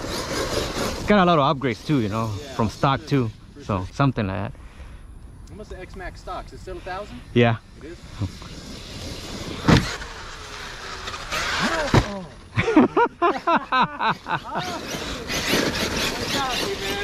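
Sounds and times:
electric motor whining: 0:07.8 - 0:12.4, 0:14.2 - 0:17.0
sharp thumps: 0:08.2 - 0:12.4.

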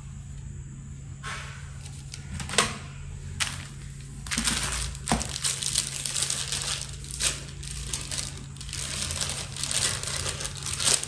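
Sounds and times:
plastic packaging crinkling: 0:03.4 - 0:11.0.

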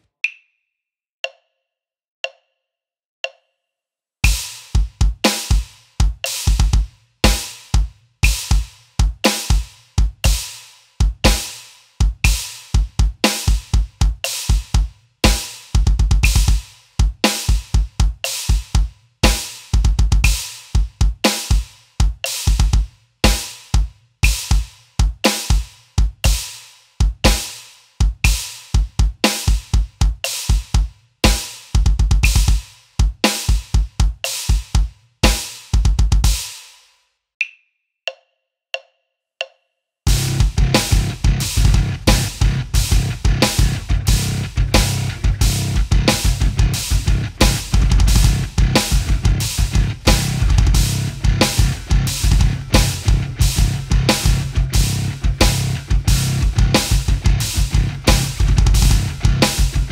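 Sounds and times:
electronic bass drum kicks: 0:12.1 - 0:16.6, 0:19.2 - 0:20.4, 0:40.1 - 0:59.9.

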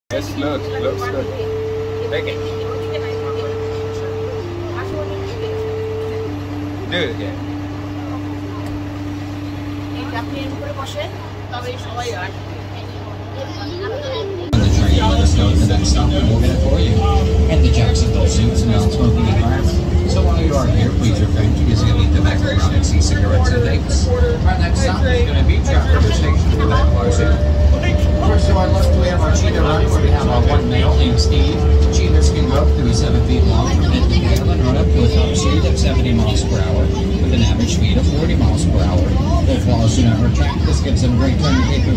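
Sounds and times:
mini train engine humming: 0:00.1 - 0:41.9
people talking: 0:00.1 - 0:41.9
steady tone: 0:00.1 - 0:41.9.

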